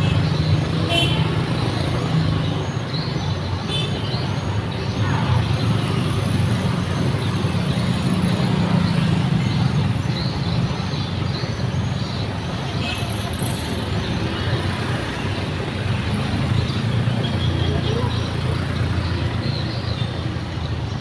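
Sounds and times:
cars passing: 0.0 - 21.0
motor scooters passing: 4.2 - 21.0.

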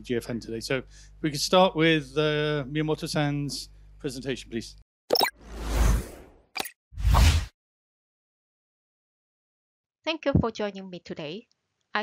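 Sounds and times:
whoosh: 5.4 - 6.4.

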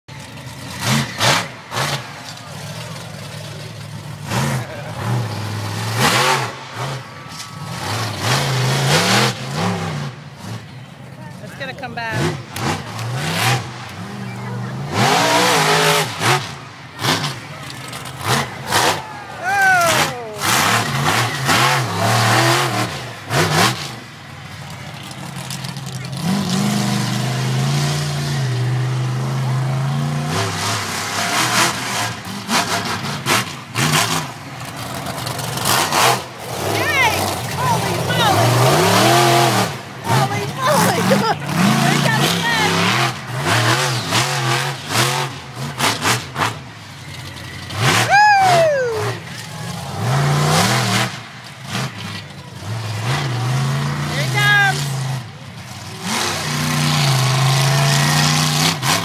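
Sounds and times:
monster truck engine revving: 0.1 - 59.0.

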